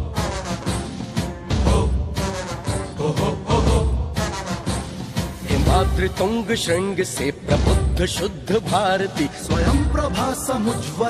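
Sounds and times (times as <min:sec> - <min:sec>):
marching drums: 0:07.5 - 0:10.6.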